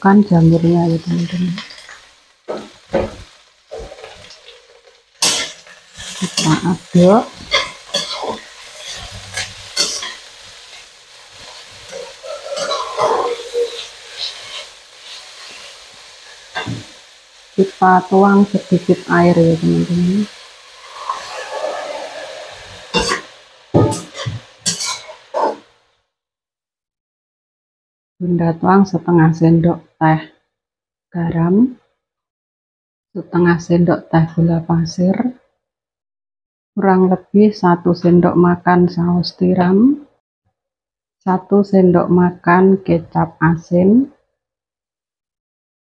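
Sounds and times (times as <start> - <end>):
mushrooms sizzling in hot oil: 0.0 - 25.9
metal spatula scraping a pan: 0.8 - 16.9, 20.2 - 25.7.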